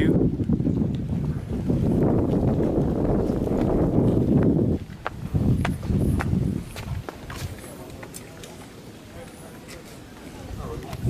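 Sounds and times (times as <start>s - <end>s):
wind buffeting microphone: 0.0s - 8.1s, 10.2s - 11.0s.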